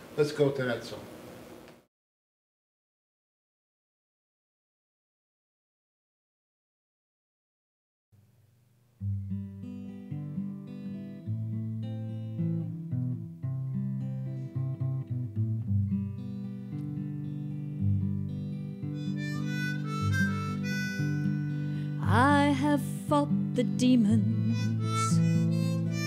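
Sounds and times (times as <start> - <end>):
acoustic guitar: 9.0 - 26.0
harmonica: 18.9 - 22.5, 24.2 - 26.0.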